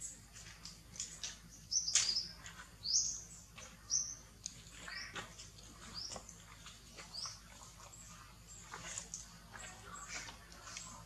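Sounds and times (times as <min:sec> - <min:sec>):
crackling of dry coconut husk: 0:03.4 - 0:11.0.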